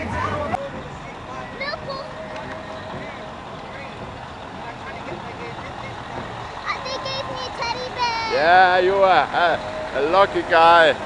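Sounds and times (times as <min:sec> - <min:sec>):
lorry engine running: 0:00.0 - 0:11.0
street and crowd noise: 0:00.0 - 0:11.0.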